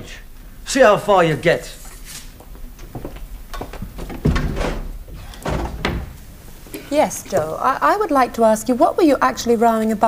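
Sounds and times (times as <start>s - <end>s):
door thud: 3.7s - 6.3s.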